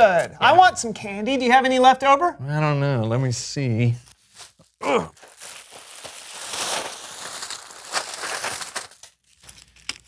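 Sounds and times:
candy wrappers crinkling: 3.8 - 10.0
plastic bag rustling: 4.1 - 10.0.

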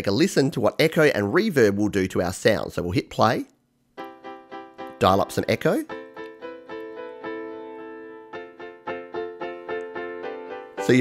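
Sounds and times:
piano notes with heavy echo: 4.0 - 11.0.

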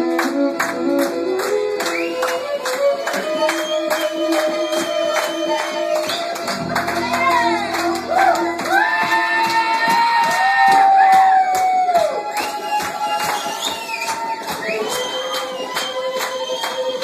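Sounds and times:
audience cheering: 1.9 - 17.0
sliding held notes: 5.1 - 9.5.

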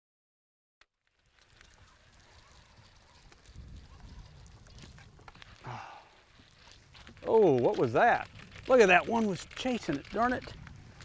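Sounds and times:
wind rumbling on microphone: 1.4 - 11.0
small clicks: 6.6 - 11.0.

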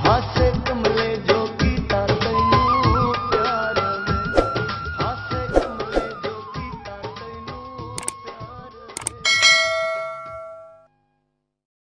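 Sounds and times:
bell-like chime: 9.2 - 10.9.

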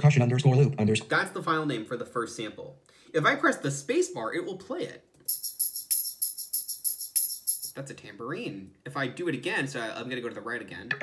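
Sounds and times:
tambourine jingling rhythm: 5.3 - 7.8.

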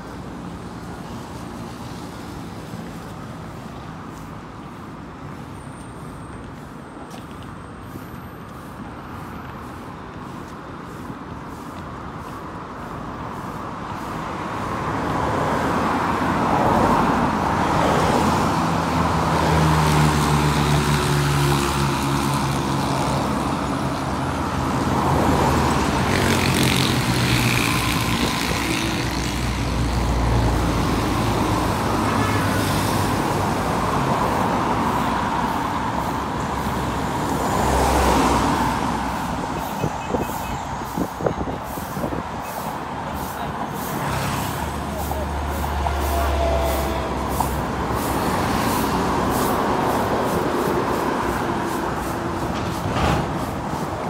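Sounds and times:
road traffic passing: 0.0 - 54.0
minibus engine humming: 15.9 - 54.0.

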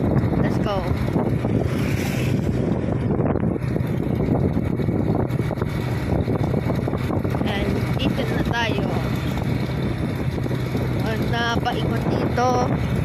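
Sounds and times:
motorcycle engine running: 0.0 - 13.0
wind buffeting microphone: 0.0 - 13.0.

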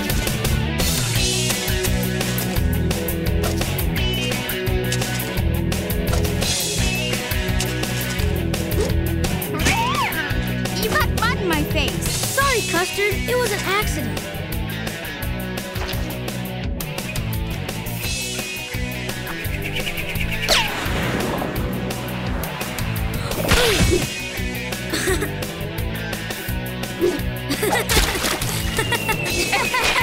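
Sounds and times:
cartoon music with repeating beat: 10.2 - 14.4.

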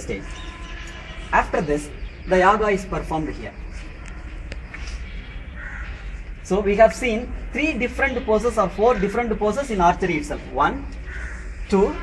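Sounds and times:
bird calling harshly: 0.0 - 6.2, 7.8 - 12.0.

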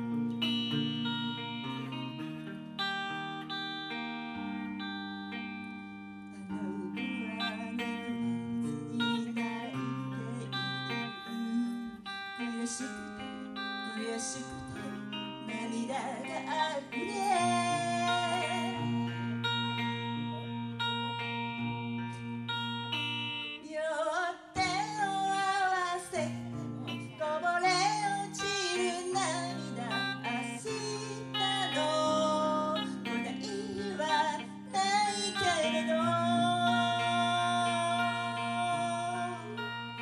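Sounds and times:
guitar accompaniment: 0.0 - 40.0
woman singing slow ballad: 4.2 - 21.2, 23.2 - 40.0.

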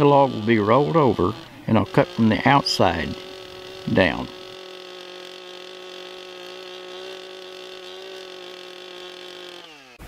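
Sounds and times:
chainsaw cutting log: 0.0 - 10.0.

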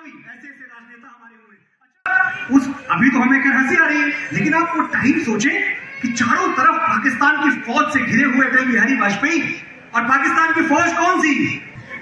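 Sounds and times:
man speaking over a microphone: 0.0 - 11.8.

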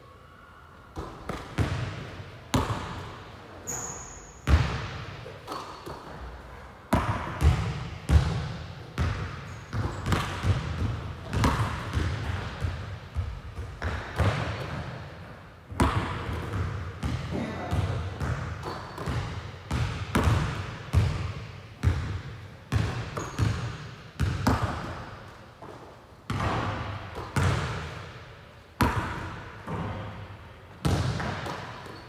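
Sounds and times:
basketball bouncing on gym floor: 1.0 - 3.1, 4.4 - 6.0, 6.9 - 15.1, 15.7 - 28.2, 28.8 - 30.2, 30.8 - 32.0.

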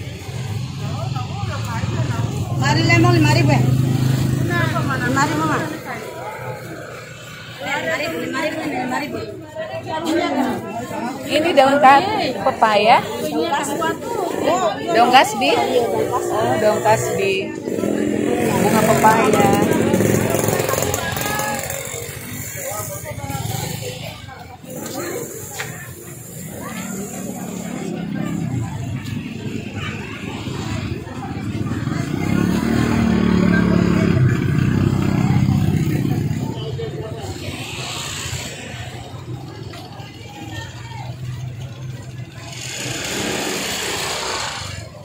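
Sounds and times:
people talking: 0.0 - 45.0
street and market noise: 0.0 - 45.0
small motorbike engine running: 15.0 - 45.0.

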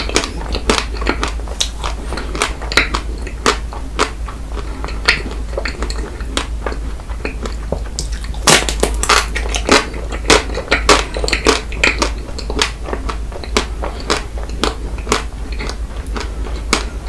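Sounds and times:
crunchy biting and chewing: 0.0 - 17.0
steady low hum: 0.0 - 17.0.

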